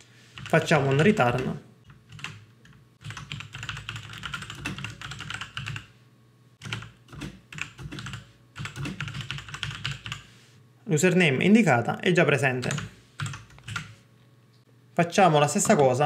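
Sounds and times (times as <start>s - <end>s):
computer keyboard typing: 0.4s - 5.9s, 6.6s - 10.3s, 12.6s - 14.0s.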